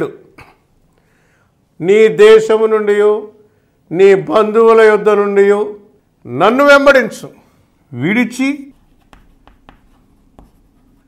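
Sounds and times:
chalk tapping on blackboard: 0:08.7 - 0:11.0.

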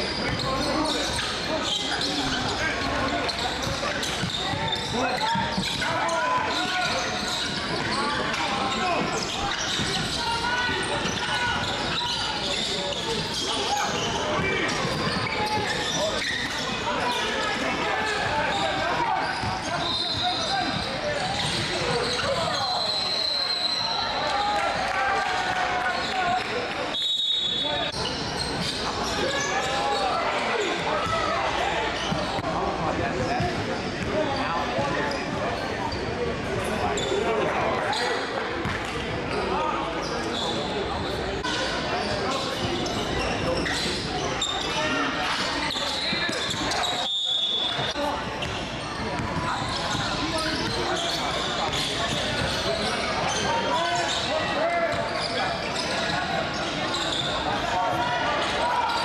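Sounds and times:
people talking and calling out: 0:00.0 - 0:59.0
basketballs bouncing on court: 0:13.2 - 0:16.6, 0:47.8 - 0:52.9.

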